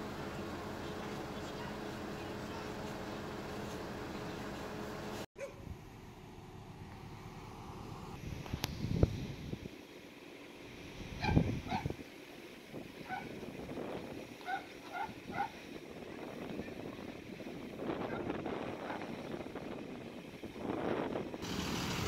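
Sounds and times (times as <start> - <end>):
light wind noise: 6.6 - 9.8, 10.7 - 22.0.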